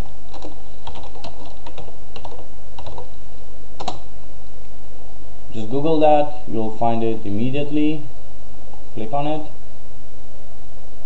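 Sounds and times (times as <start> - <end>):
steady low hum: 0.0 - 11.0
keyboard keys clicking: 0.3 - 3.2, 3.8 - 4.0.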